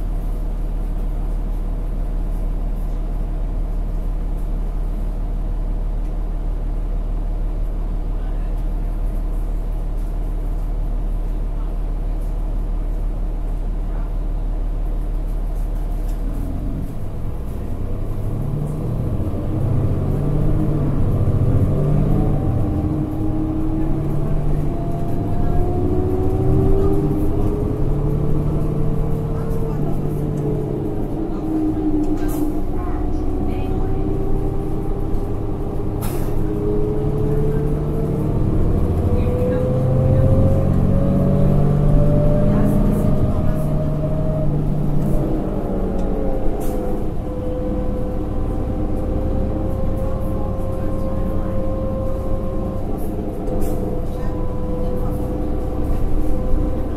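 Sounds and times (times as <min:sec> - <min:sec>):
bus engine low rumble: 0:00.0 - 0:56.9.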